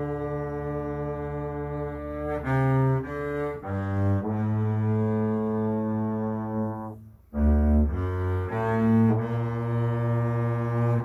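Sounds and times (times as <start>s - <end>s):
bowed double bass: 0.0s - 11.0s.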